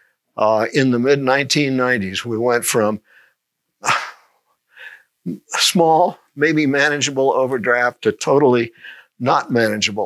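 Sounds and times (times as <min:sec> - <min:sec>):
man speaking: 0:00.4 - 0:03.0, 0:03.8 - 0:04.3, 0:05.2 - 0:10.0
man's breathy intake of breath: 0:03.0 - 0:05.2, 0:08.7 - 0:09.2.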